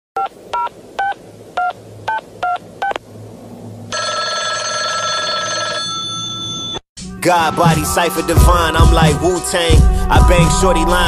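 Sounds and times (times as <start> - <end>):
telephone keypad beeps: 4.0 - 6.8.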